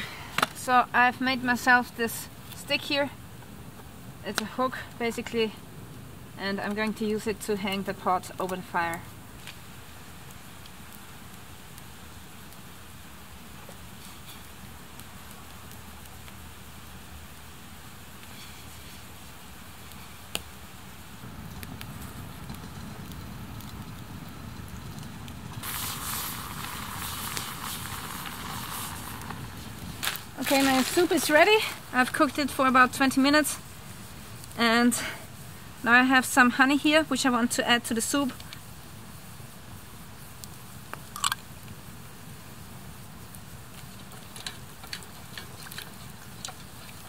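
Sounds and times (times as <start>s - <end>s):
campfire hissing and crackling: 0.0s - 47.0s
sharp crack of fire: 0.0s - 47.0s.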